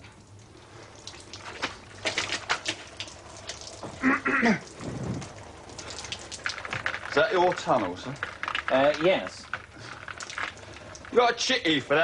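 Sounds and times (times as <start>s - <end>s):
water splashing: 0.0s - 12.0s.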